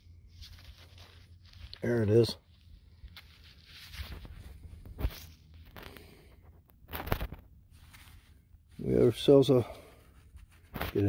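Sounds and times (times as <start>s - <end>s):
rustling and scraping of soil: 0.0s - 11.0s.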